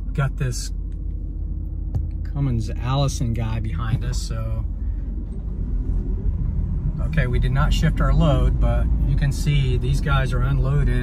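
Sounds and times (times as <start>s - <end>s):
truck cab road rumble: 0.0s - 11.0s.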